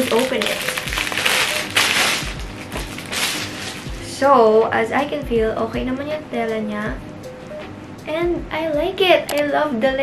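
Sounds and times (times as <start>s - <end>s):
plastic bag rustling and crinkling: 0.0s - 4.2s
soft background music: 0.0s - 10.0s.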